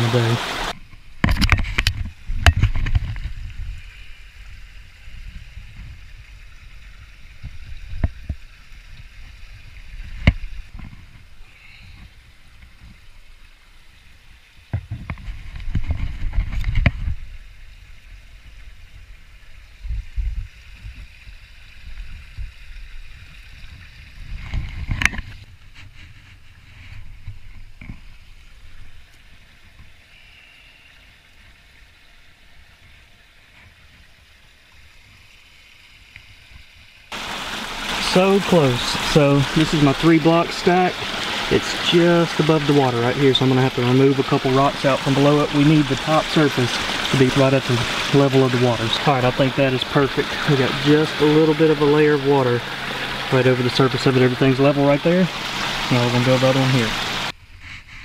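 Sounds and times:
water sloshing and splashing: 0.0s - 30.1s, 31.0s - 57.4s.

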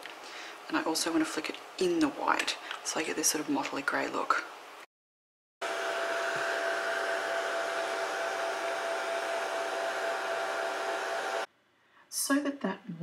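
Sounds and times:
blow dryer running: 5.6s - 11.5s.

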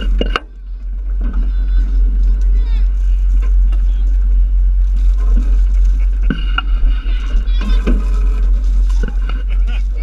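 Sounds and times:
boat engine rumble: 0.0s - 10.0s
children shouting in distance: 6.9s - 8.4s.

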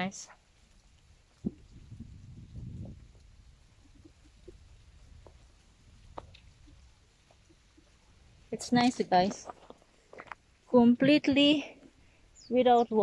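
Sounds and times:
wind buffeting microphone: 0.8s - 9.6s.

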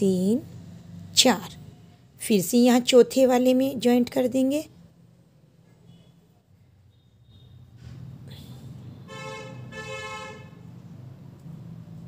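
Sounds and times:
vehicle horn honking: 6.9s - 7.7s, 8.9s - 10.7s.

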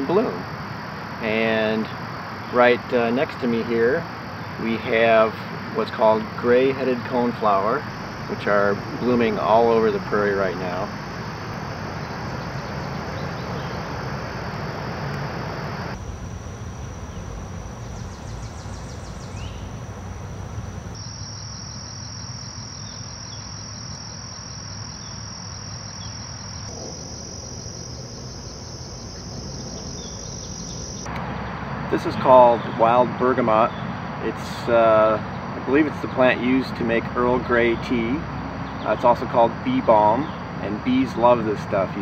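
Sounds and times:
crickets trilling: 0.0s - 42.0s
distant traffic hum: 0.0s - 42.0s.

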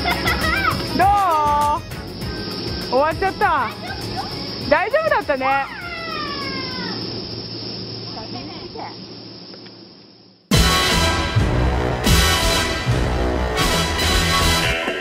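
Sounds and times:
background music: 0.0s - 5.7s, 10.5s - 15.0s
woman shouting and whooping: 0.4s - 1.8s.

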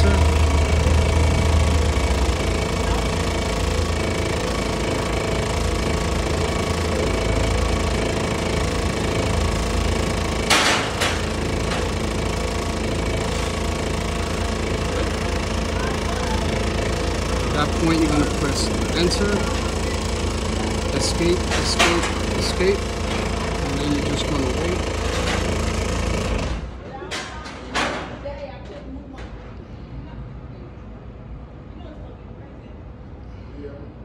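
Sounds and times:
forklift engine idling: 0.0s - 26.8s.

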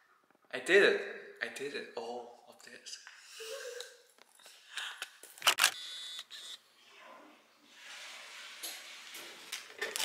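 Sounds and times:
camera shutter clicks: 5.4s - 6.5s.

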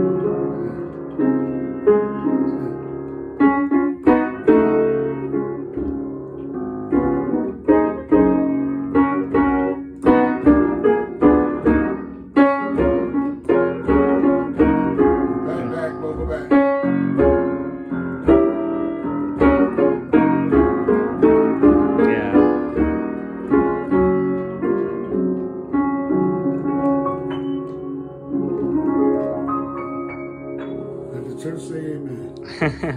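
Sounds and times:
gospel upright piano: 0.0s - 32.9s.

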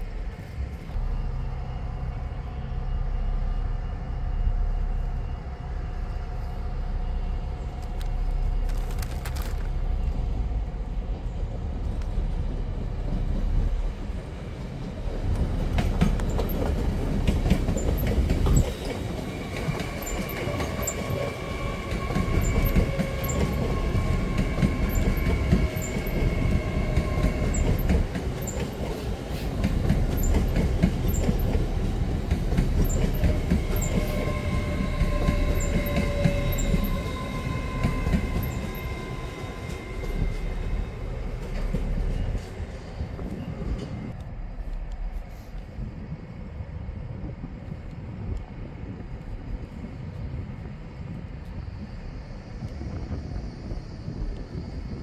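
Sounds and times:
electric whine of train: 0.0s - 55.0s
train wheels rumbling on rails: 0.0s - 55.0s
clickety-clack over rail joints: 7.6s - 55.0s.

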